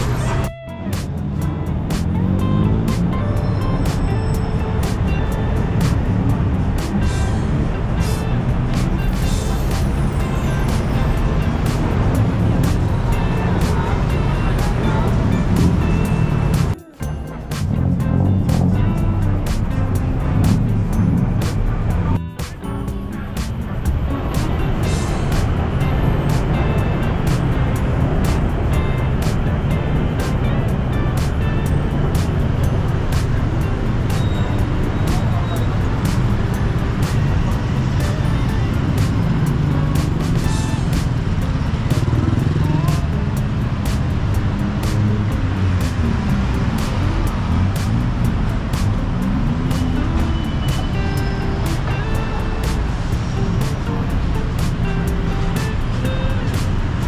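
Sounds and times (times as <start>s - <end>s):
cars passing: 0.0s - 57.0s
music: 0.0s - 57.0s.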